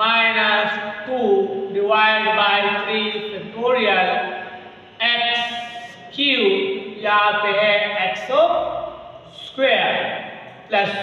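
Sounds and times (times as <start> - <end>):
man speaking slowly: 5.0 - 6.8.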